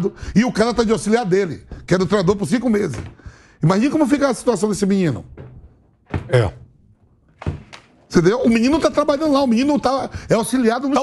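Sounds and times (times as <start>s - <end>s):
person speaking: 6.1s - 6.8s.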